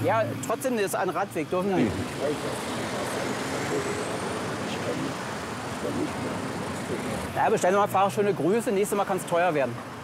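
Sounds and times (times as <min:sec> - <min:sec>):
cars and truck passing: 0:00.0 - 0:10.0.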